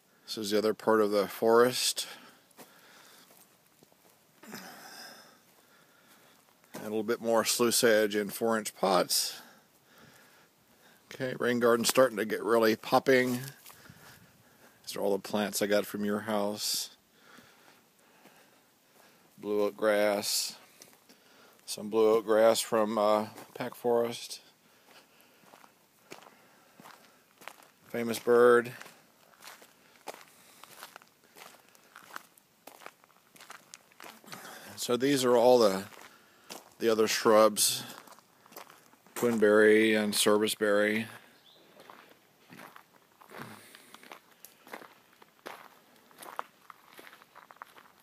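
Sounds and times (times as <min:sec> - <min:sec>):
footsteps on garden ground: 0:00.7 - 0:48.0.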